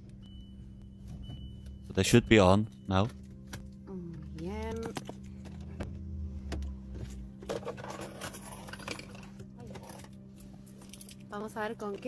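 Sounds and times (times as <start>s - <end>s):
low rumble: 0.0s - 10.2s.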